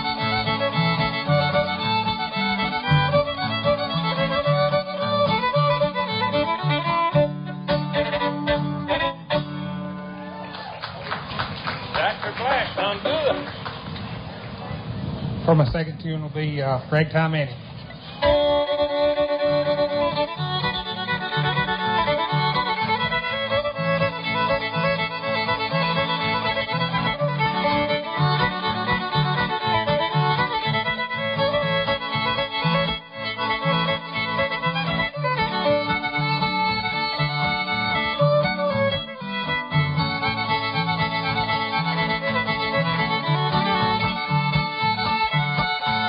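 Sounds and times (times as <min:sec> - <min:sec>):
guitar bass rhythm: 0:00.0 - 0:10.3, 0:18.2 - 0:46.0
bluegrass fiddle tune: 0:00.0 - 0:13.5, 0:15.6 - 0:46.0.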